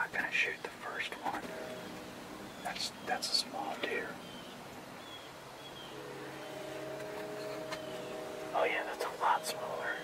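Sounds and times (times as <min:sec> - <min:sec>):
steady low hum: 0:00.0 - 0:10.0
faint bird chirps: 0:00.3 - 0:10.0.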